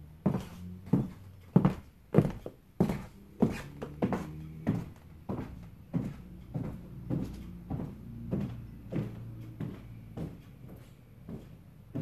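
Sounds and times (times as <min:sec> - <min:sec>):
floorboards creaking: 0:00.1 - 0:12.0
high heels on hardwood floor: 0:00.1 - 0:12.0.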